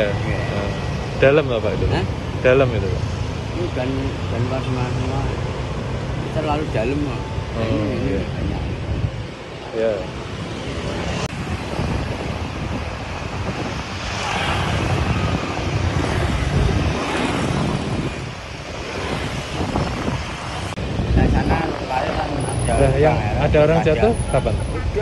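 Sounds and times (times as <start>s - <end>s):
cars passing: 0.0s - 25.0s
motorbikes passing: 0.0s - 25.0s.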